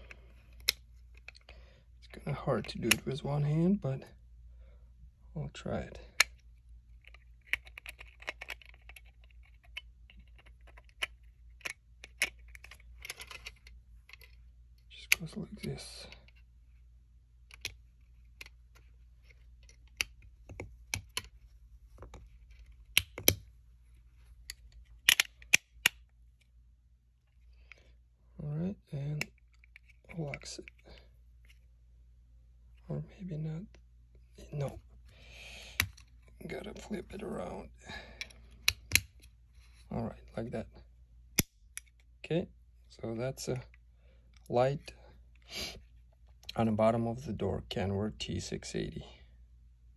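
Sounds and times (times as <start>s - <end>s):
plastic parts clicking together: 6.1s - 16.4s, 17.4s - 21.4s, 22.0s - 23.5s, 24.4s - 26.1s, 38.2s - 39.3s
plastic parts snapping together: 22.0s - 23.5s, 24.4s - 26.1s.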